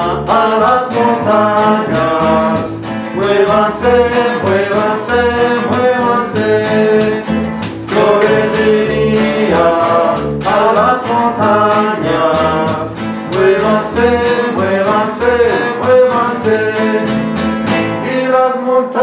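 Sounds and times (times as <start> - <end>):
plucked double bass: 0.0 - 18.0
acoustic guitar strumming: 0.0 - 18.6.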